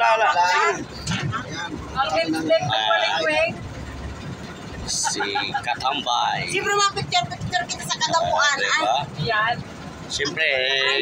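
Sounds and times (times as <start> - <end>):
people talking: 0.0 - 3.6, 4.9 - 11.0.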